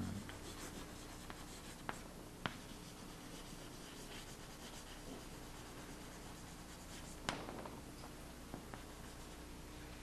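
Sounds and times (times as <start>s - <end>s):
chalk scratching on chalkboard: 0.2s - 7.3s, 8.8s - 9.5s
sharp chalk tap: 1.3s - 2.6s.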